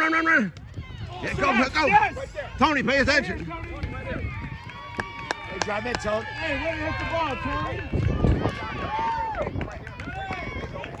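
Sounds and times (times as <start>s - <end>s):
voices calling and talking: 0.0s - 11.0s.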